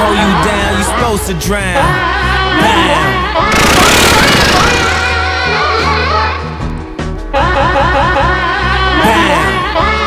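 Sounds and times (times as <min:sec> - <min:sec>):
loud harsh rattling: 0:03.5 - 0:05.4.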